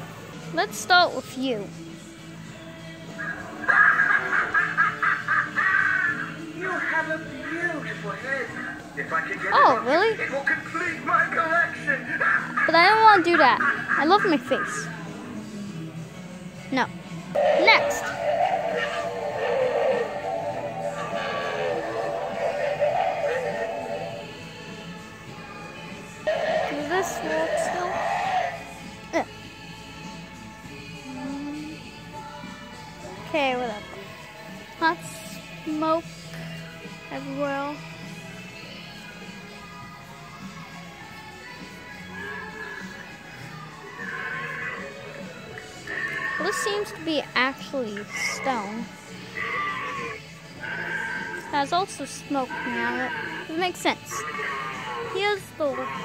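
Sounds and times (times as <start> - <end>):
spooky music from small speaker: 0.0 - 56.0
recorded cry: 3.1 - 9.7, 17.3 - 33.2, 41.5 - 47.0, 48.0 - 56.0
steady high tone: 17.4 - 24.4.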